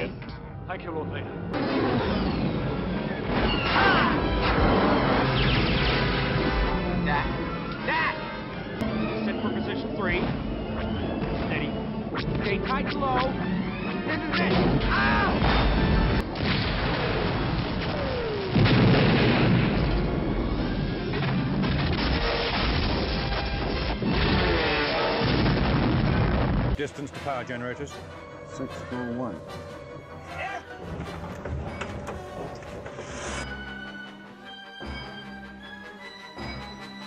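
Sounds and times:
orchestral score: 0:00.0 - 0:16.3, 0:26.8 - 0:37.0
cannon blasts and explosions: 0:01.5 - 0:07.0, 0:14.4 - 0:26.8
falling whine: 0:08.4 - 0:26.8
crash boom: 0:14.5 - 0:26.8.

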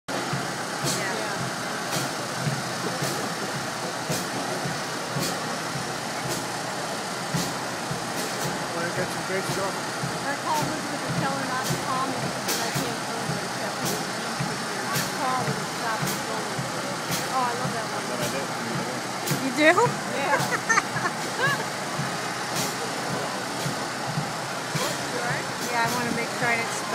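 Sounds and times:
crowd voices: 0:00.1 - 0:26.9
traffic noise: 0:00.1 - 0:26.9.

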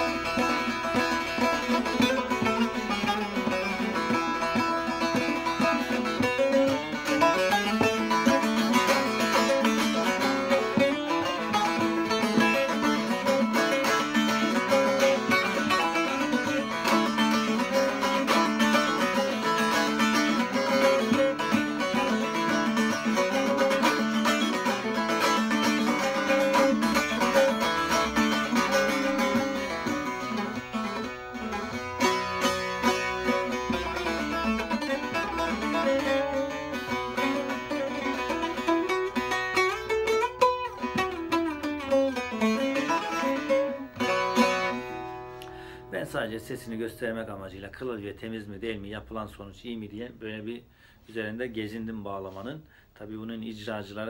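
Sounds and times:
long-neck lute playing: 0:00.0 - 0:54.0.

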